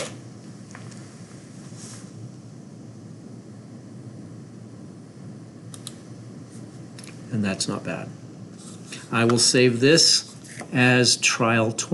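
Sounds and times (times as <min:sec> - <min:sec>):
low hum with faint hiss: 0:00.0 - 0:11.9.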